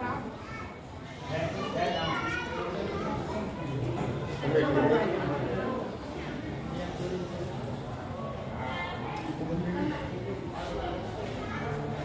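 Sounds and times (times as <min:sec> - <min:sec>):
children's voices: 0:00.0 - 0:03.8.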